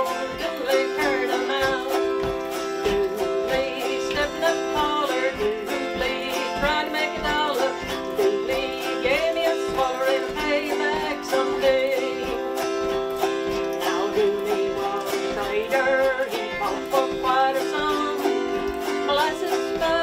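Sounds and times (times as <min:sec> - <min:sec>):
autoharp strumming: 0:00.0 - 0:20.0
woman singing: 0:00.0 - 0:20.0.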